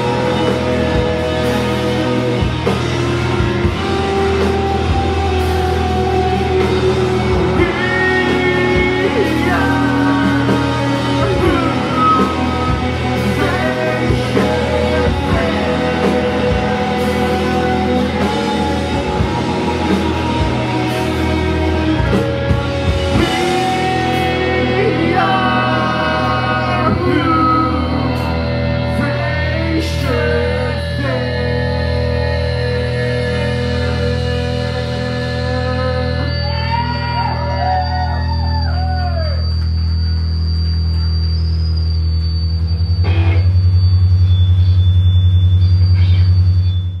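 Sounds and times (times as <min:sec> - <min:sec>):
electric guitars and bass chord ringing: 0:00.0 - 0:47.0
live rock band: 0:00.0 - 0:47.0.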